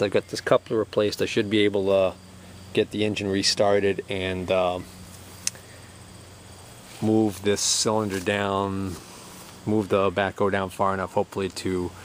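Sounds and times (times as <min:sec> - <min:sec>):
sharp click: 0:05.1 - 0:05.6.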